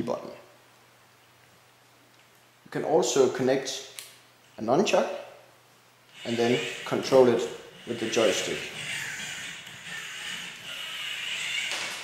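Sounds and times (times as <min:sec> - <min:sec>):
small electric motors whirring: 0:06.1 - 0:12.0.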